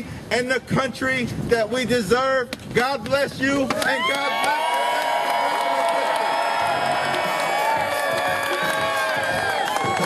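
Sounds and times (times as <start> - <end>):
crowd cheering and whooping: 3.7 - 10.0.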